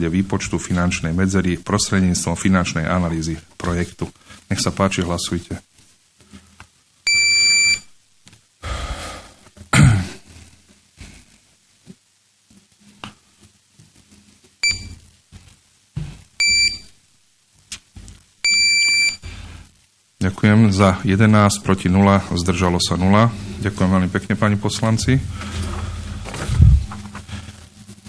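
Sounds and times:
electronic beeps: 0:14.6 - 0:15.0, 0:16.4 - 0:16.9, 0:18.4 - 0:19.2
thuds and rustles: 0:15.4 - 0:16.3, 0:25.3 - 0:27.5.

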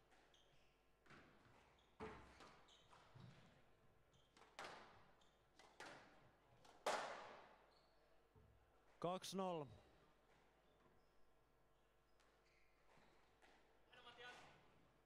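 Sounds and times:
shoes squeaking on court floor: 0:00.1 - 0:04.4, 0:12.4 - 0:13.5.

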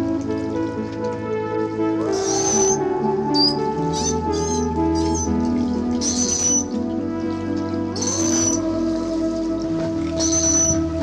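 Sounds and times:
background music with sustained tones: 0:00.0 - 0:11.0
beluga whale whistles: 0:02.1 - 0:05.4, 0:06.0 - 0:06.7, 0:08.0 - 0:08.7, 0:10.1 - 0:11.0.

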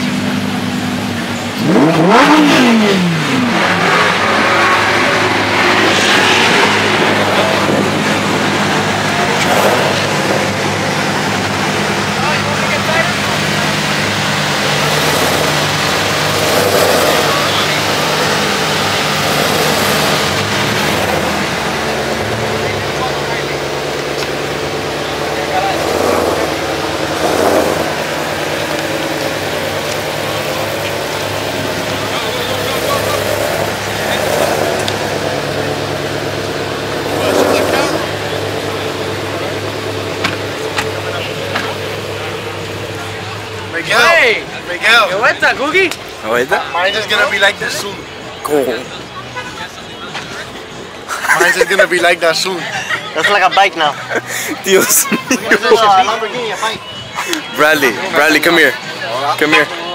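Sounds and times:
car engines idling: 0:00.0 - 0:59.9
people talking: 0:00.0 - 0:59.9.

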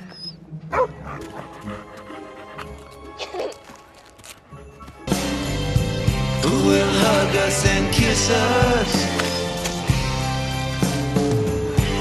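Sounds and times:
background music: 0:00.0 - 0:12.0
dog barking: 0:00.7 - 0:01.5.

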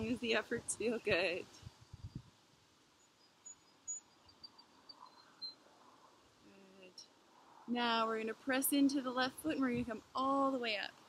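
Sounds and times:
small birds chirping: 0:03.0 - 0:07.2.

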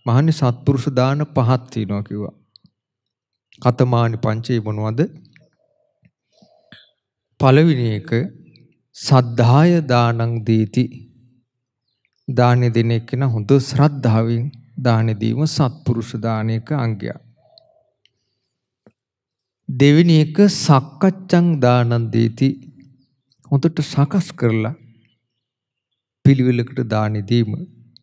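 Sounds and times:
man speaking: 0:00.0 - 0:02.4, 0:03.6 - 0:05.2, 0:07.4 - 0:08.4, 0:09.0 - 0:11.1, 0:12.3 - 0:17.2, 0:19.7 - 0:22.7, 0:23.5 - 0:24.8, 0:26.3 - 0:27.8
man's voice: 0:00.0 - 0:02.4, 0:03.6 - 0:05.2, 0:07.4 - 0:08.4, 0:09.0 - 0:11.1, 0:12.3 - 0:17.3, 0:19.7 - 0:22.7, 0:23.5 - 0:24.8, 0:26.3 - 0:27.8
faint mouth clicks: 0:05.3 - 0:07.0.

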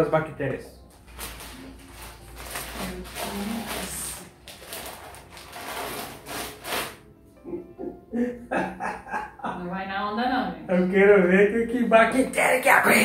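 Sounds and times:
cloth rubbing plastic packaging: 0:01.0 - 0:07.0.

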